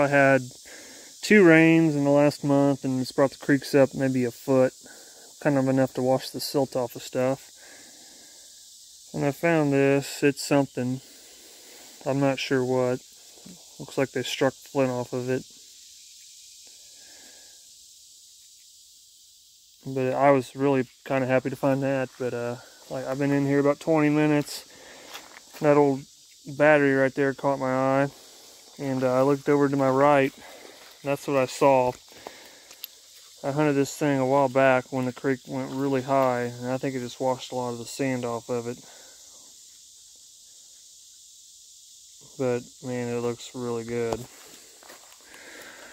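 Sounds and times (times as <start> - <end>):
high-pitched insect drone: 0.0 - 45.9.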